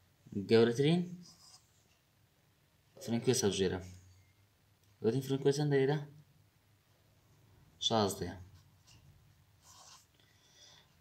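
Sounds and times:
pen scratching on paper: 0:09.6 - 0:10.1.

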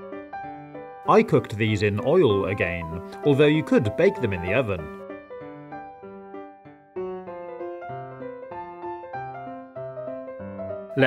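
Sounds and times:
keyboard music with bass line: 0:00.0 - 0:11.0.

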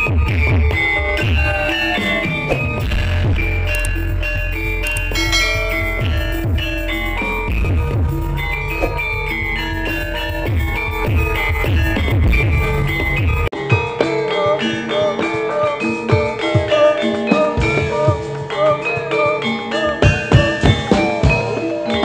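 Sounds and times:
heavy bass and drum strokes: 0:00.0 - 0:14.0
metallophones playing melody: 0:00.0 - 0:22.0.

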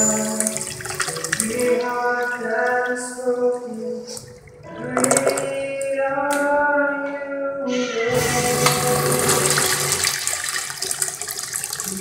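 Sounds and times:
urinal flushing: 0:00.0 - 0:03.0, 0:07.7 - 0:12.0.

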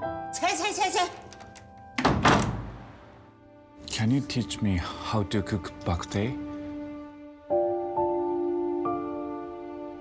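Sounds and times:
door slamming shut: 0:01.3 - 0:03.1.

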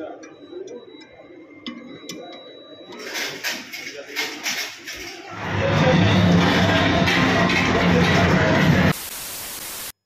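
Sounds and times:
loud music-like sound: 0:05.3 - 0:09.1
steady static hiss: 0:08.6 - 0:10.0.

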